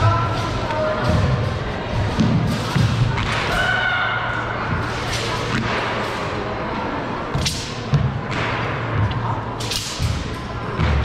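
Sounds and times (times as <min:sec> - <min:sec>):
murmur of large hall: 0:00.0 - 0:11.0.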